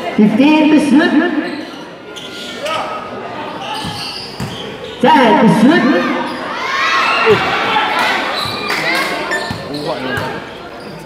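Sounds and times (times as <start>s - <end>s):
basketball bouncing on hard court: 3.8s - 4.6s.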